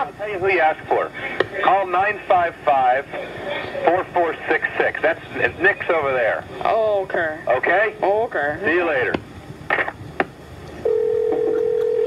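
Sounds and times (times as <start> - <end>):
phone hang-up click: 10.8 - 12.0
telephone dial tone: 10.8 - 12.0.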